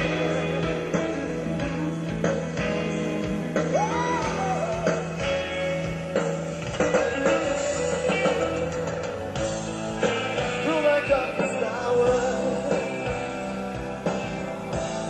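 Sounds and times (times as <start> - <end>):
bass guitar: 0.0 - 15.0
drums: 0.0 - 15.0
electric guitar: 0.0 - 15.0
person singing: 3.6 - 5.6, 6.8 - 9.1, 10.2 - 14.3.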